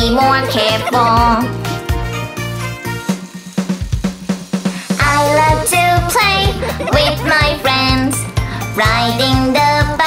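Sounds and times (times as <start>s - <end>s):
drum kit beat: 0.0s - 9.1s.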